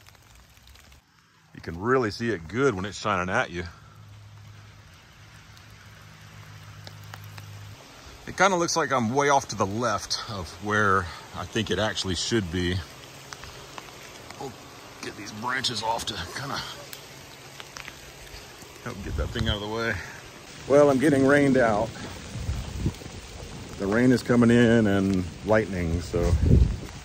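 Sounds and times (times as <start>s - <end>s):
light rain falling: 0.0s - 27.0s
faint drip ticks: 3.6s - 8.1s, 12.7s - 20.2s.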